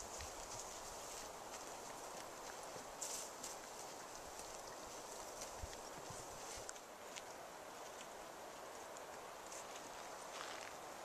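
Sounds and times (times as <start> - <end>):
horse hooves on sandy track: 0.0 - 11.0.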